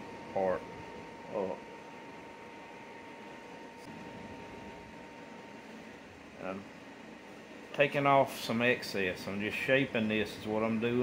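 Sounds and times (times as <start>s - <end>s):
faint steady hum: 0.0s - 11.0s
room tone hiss: 0.0s - 11.0s.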